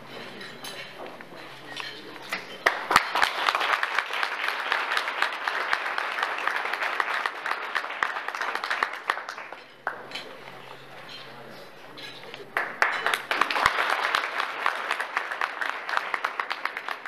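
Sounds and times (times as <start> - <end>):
audience applauding: 2.6 - 10.2, 12.6 - 17.0.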